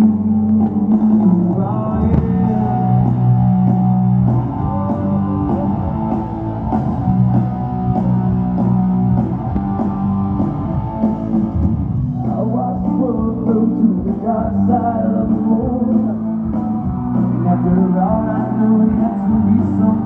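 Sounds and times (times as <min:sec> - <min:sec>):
live rock band playing: 0:00.0 - 0:20.0.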